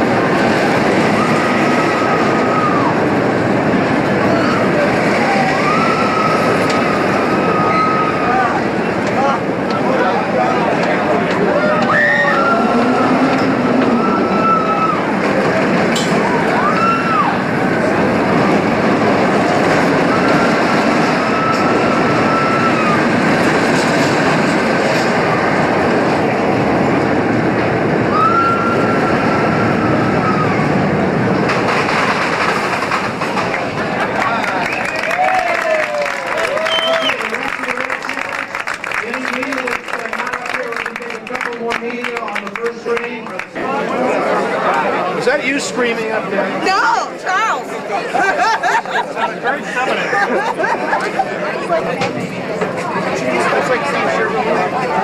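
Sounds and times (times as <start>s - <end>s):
roller coaster rumbling on track: 0.0s - 55.0s
riders screaming: 0.6s - 3.2s, 4.3s - 8.8s, 11.5s - 15.3s, 16.2s - 17.6s, 19.8s - 23.5s, 28.0s - 30.9s.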